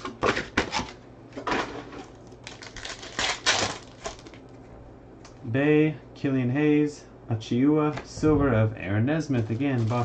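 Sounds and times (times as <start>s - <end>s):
foil wrapper crinkling and tearing: 2.3s - 4.5s, 9.5s - 10.0s.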